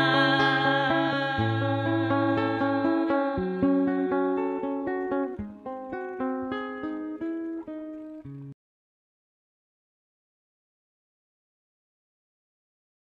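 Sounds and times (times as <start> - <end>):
acoustic guitar plucked notes: 0.0 - 8.6.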